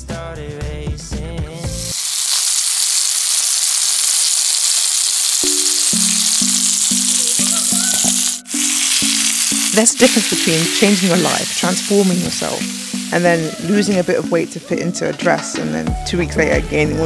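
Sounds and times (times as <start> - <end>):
music: 0.0 - 2.3, 5.2 - 17.0
chicken sizzling in a pan: 1.6 - 15.0
held music notes: 5.4 - 17.0.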